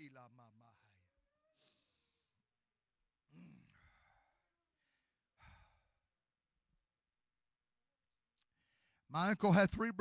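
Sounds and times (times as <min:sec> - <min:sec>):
man sighing: 0:03.3 - 0:04.4.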